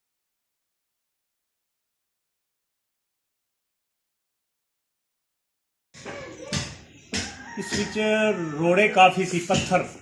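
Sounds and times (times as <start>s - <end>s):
sharp knock: 6.0s - 7.9s.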